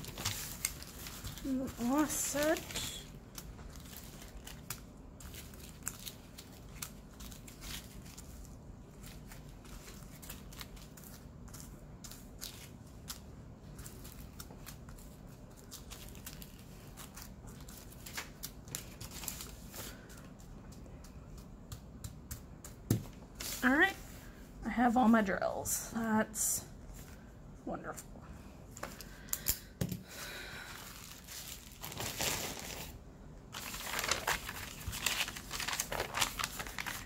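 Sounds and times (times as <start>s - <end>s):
thin plastic bags crinkling: 0.0s - 20.4s, 30.0s - 37.0s.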